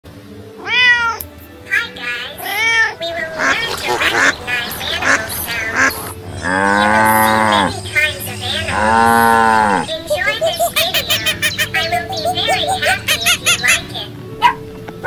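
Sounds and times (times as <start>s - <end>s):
kitten meowing: 0.6s - 1.3s, 2.4s - 3.6s
ducks quacking: 1.7s - 14.6s
cow mooing: 3.3s - 8.0s, 8.6s - 10.0s.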